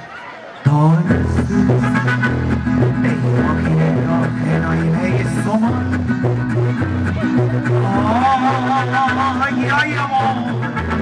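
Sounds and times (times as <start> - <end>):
band music: 0.7 - 11.0
sousaphone bass line: 0.7 - 11.0.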